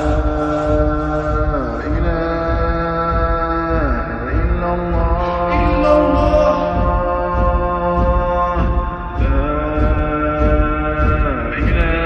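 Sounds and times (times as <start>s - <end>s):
low pulsing beat: 0.0s - 12.0s
layered voices chanting: 4.9s - 12.0s.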